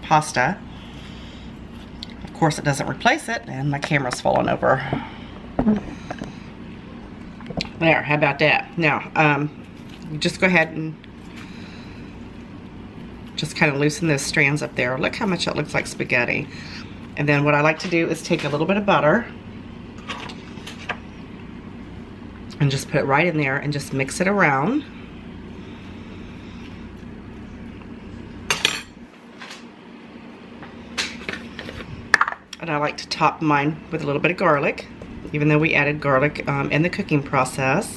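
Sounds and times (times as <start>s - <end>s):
low background hum: 0.0s - 37.9s.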